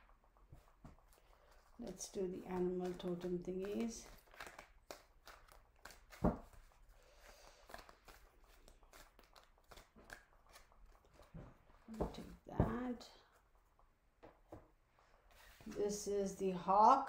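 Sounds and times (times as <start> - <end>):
cards being shuffled: 0.6 - 12.4.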